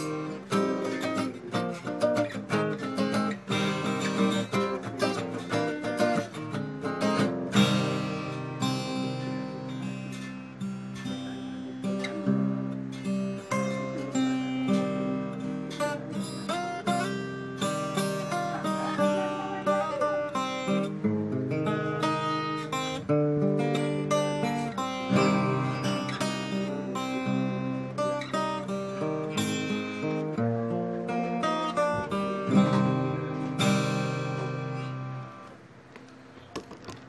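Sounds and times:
acoustic guitar playing: 0.0 - 37.0.

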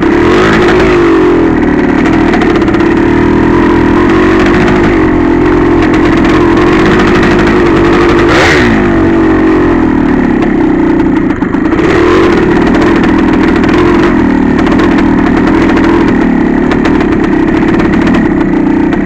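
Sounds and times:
two-stroke motorcycle engine running: 0.0 - 19.0.

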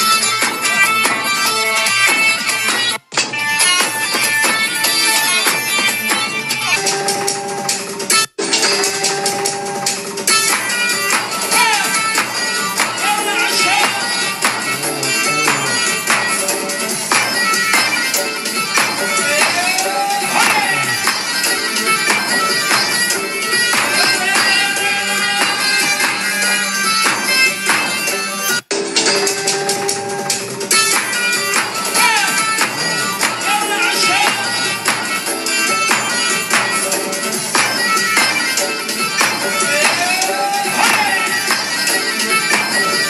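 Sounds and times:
reedy wind instrument note: 14.0 - 16.6, 17.5 - 24.9, 32.4 - 33.8.

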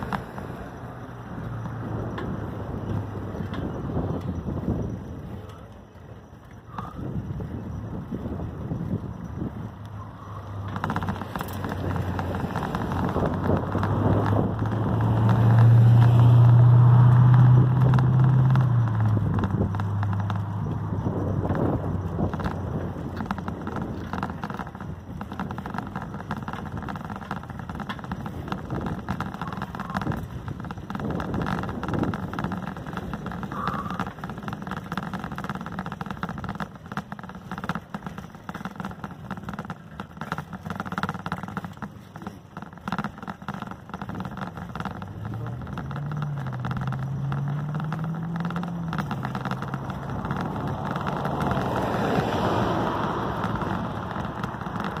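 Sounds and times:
wind and road noise: 0.0 - 55.0
vehicle engine rising in pitch: 9.7 - 24.3, 44.3 - 55.0.

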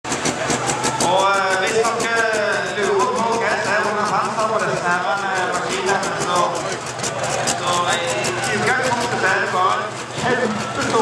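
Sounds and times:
tractor engine running: 0.0 - 11.0
man talking: 1.0 - 6.8, 7.4 - 11.0.

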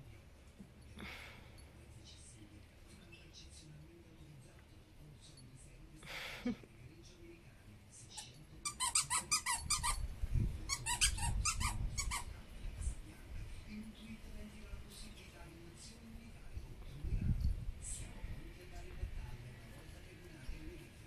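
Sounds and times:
squeaky dog toy squeaking: 8.2 - 10.1, 10.7 - 12.3.

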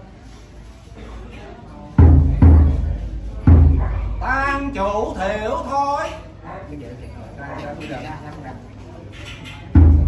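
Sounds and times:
faint broken human voices: 0.0 - 10.0.

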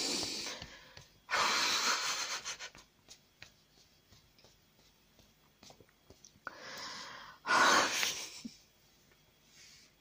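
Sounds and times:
woman breathing heavily: 0.0 - 2.9, 6.4 - 8.5.

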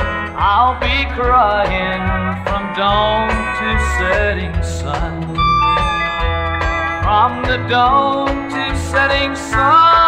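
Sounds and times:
plucked guitar: 0.0 - 10.0
sliding lead guitar line: 0.0 - 10.0
steady bass notes: 0.0 - 10.0.

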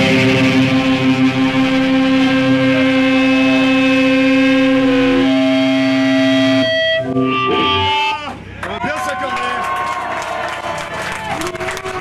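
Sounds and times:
distorted electric guitars droning: 0.0 - 8.6.

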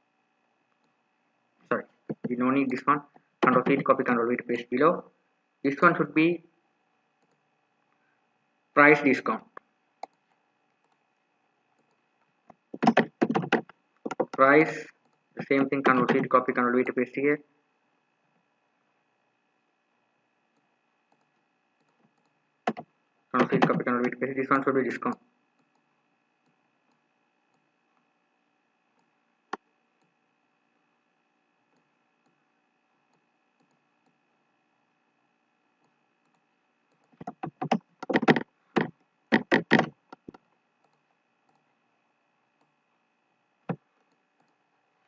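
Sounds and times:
keyboard key presses: 2.1 - 2.3, 3.4 - 4.0, 12.5 - 14.4, 15.8 - 16.4, 22.7 - 24.1, 37.0 - 40.4
computer mouse clicks: 9.6 - 11.0, 11.8 - 14.4, 15.8 - 17.0, 20.5 - 24.1, 35.8 - 41.7, 43.7 - 44.6.

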